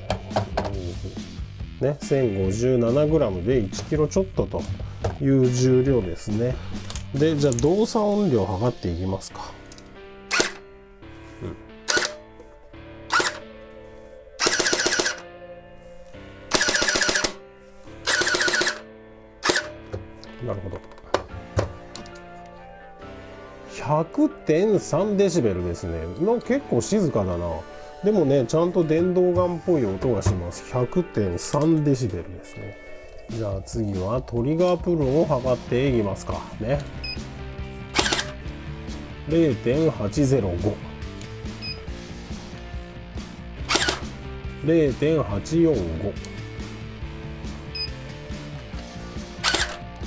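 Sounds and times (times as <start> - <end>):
background music: 0.0 - 50.0
electric airsoft gun bursts: 10.3 - 10.6, 11.9 - 12.2, 13.1 - 13.4, 14.4 - 15.2, 16.5 - 17.4, 18.0 - 18.8, 19.4 - 19.8, 38.0 - 38.4, 43.7 - 44.1, 49.4 - 49.8.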